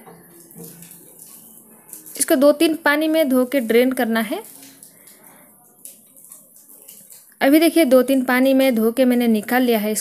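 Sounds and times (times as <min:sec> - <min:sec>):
wet squishing of rice in water: 0:00.2 - 0:09.0.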